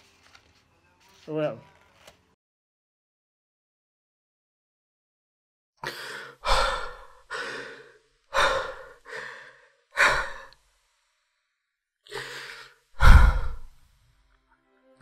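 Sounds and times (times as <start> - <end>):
person sighing: 5.8 - 10.5, 12.1 - 13.8
person breathing heavily: 5.8 - 10.6, 12.1 - 13.8.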